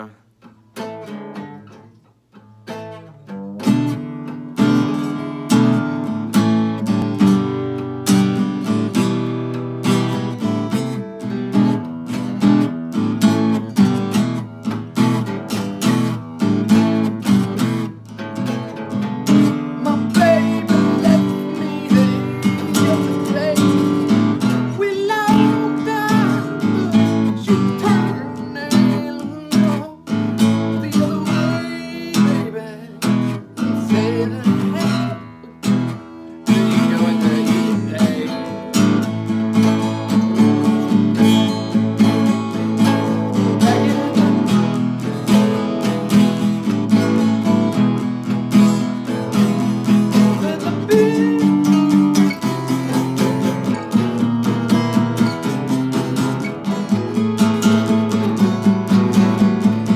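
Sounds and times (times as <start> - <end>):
acoustic guitars strumming blues: 0.0 - 59.9.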